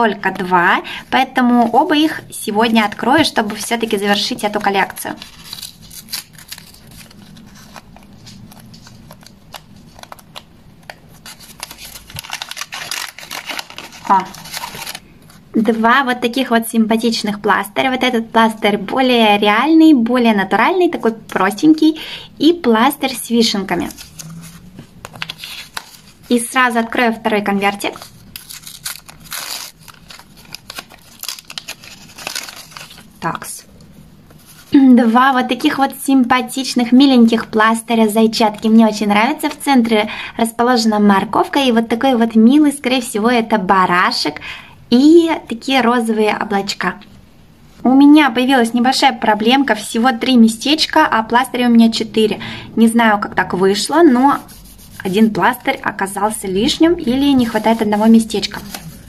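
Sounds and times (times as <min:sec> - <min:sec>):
paper crinkling and rustling: 0:02.6 - 0:15.4, 0:23.7 - 0:26.5, 0:27.7 - 0:33.2, 0:57.2 - 0:59.0.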